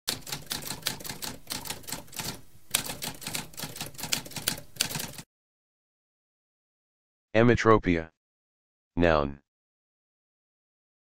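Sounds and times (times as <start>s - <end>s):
typewriter keys clacking: 0.1s - 5.2s.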